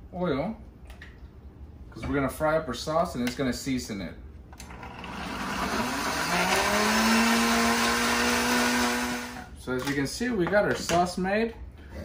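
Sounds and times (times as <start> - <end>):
blender motor whining: 4.6 - 9.5.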